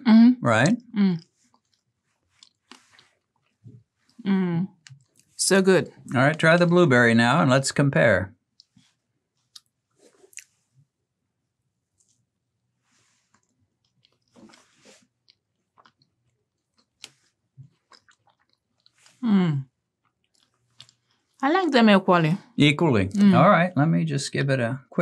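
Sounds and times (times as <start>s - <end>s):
person chewing: 1.2s - 4.2s, 4.8s - 5.4s, 9.4s - 10.6s, 13.3s - 19.2s, 20.0s - 21.4s.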